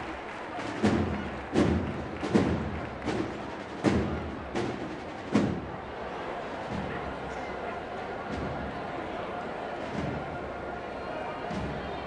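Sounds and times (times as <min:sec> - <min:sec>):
crowd murmur: 0:00.0 - 0:12.0.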